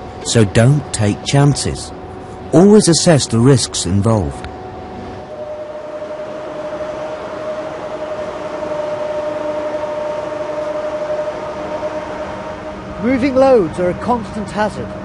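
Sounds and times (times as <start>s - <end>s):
cargo crane mechanical whine: 0.0s - 15.0s.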